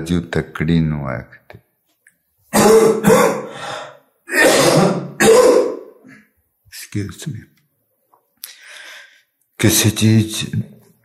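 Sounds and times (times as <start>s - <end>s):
man coughing: 2.5s - 3.6s, 4.3s - 5.9s.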